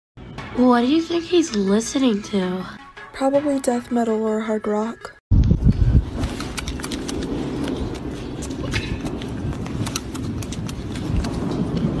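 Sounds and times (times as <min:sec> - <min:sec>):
monkey chewing and smacking: 0:06.4 - 0:12.0.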